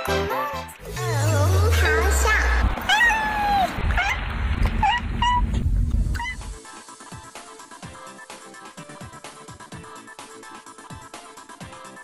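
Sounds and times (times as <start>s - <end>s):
cat meowing: 1.8s - 6.6s.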